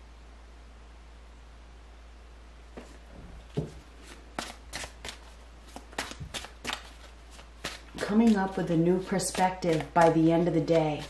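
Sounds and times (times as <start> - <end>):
faint low hum: 0.0 - 11.0
cards being shuffled: 4.0 - 11.0.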